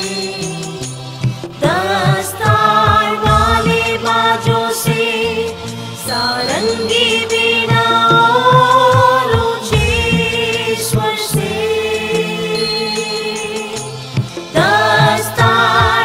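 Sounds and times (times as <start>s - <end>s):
backing track with bass and beat: 0.0s - 16.0s
group singing devotional song: 0.0s - 16.0s.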